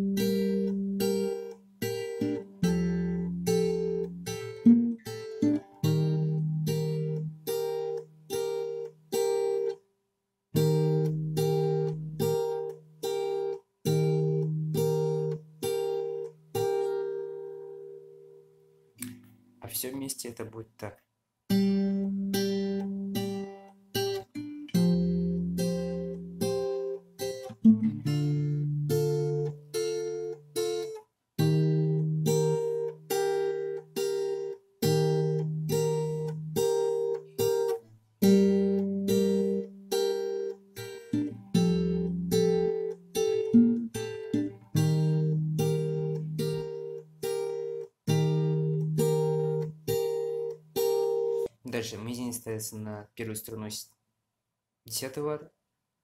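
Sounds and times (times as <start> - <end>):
fingerstyle acoustic guitar: 0.0 - 9.9, 10.5 - 19.6, 21.5 - 52.4.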